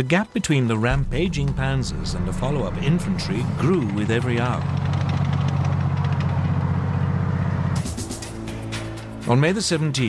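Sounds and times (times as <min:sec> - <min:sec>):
tank engine droning: 0:00.9 - 0:08.9.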